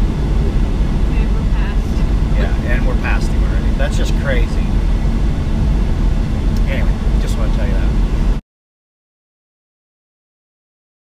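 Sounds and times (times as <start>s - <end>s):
truck engine and road rumble: 0.0s - 8.4s.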